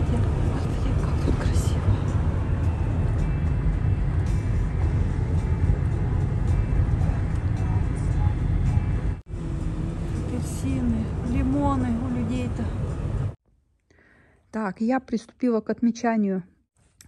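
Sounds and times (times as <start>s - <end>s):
car cabin road rumble: 0.0s - 13.4s.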